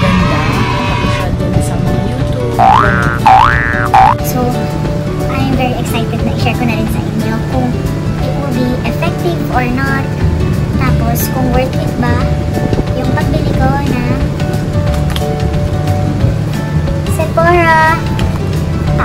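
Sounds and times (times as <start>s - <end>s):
background music: 0.0s - 19.0s
cartoon boing sound effects: 2.6s - 4.2s.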